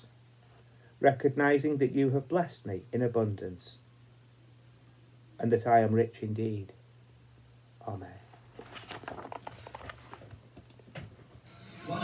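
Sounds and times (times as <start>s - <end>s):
paper rustling: 8.2s - 10.4s.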